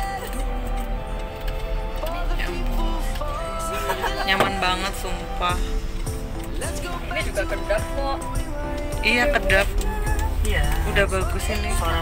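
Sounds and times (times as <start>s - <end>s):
music from car radio: 0.0s - 12.0s.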